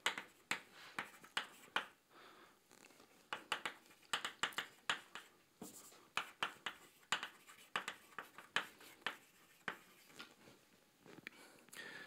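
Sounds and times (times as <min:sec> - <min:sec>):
chalk tapping and scratching: 0:00.0 - 0:02.0, 0:03.1 - 0:10.3.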